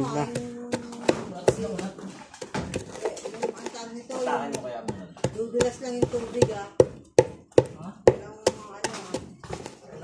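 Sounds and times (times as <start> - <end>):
pestle pounding in mortar: 0.0 - 10.0.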